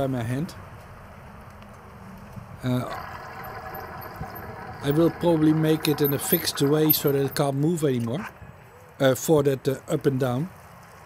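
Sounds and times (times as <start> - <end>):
bicycle tyres on wet pavement: 2.7 - 7.4.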